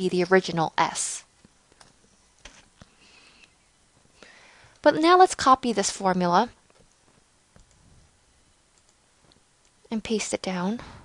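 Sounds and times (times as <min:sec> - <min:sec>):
person speaking: 0:04.8 - 0:06.6
computer mouse clicks: 0:08.7 - 0:09.8.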